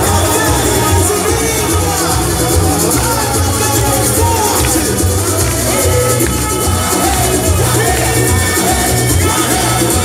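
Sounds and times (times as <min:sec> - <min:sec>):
loud music with heavy bass beat: 0:00.0 - 0:10.0.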